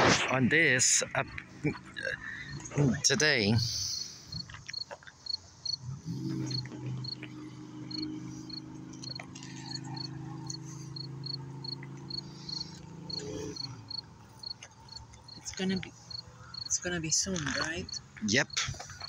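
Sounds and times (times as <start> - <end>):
cricket chirping: 3.6 - 19.0.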